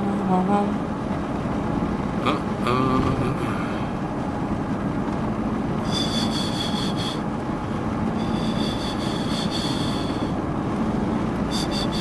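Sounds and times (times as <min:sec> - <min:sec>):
car driving rumble: 0:00.0 - 0:12.0
windscreen wipers squeaking: 0:05.8 - 0:07.2, 0:08.0 - 0:10.4, 0:11.4 - 0:12.0.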